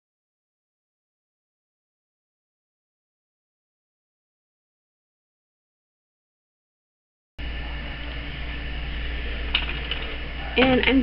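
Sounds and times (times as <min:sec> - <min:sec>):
low electrical hum: 0:07.4 - 0:11.0.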